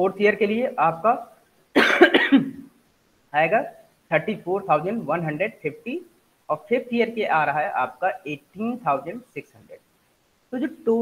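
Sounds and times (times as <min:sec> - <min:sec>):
man coughing: 0:01.8 - 0:02.6.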